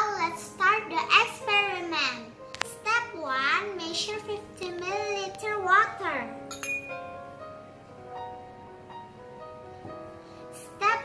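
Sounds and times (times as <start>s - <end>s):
child speaking: 0.0s - 6.4s, 10.6s - 11.0s
soft background music: 0.0s - 11.0s
glass beaker clinking: 6.5s - 7.1s.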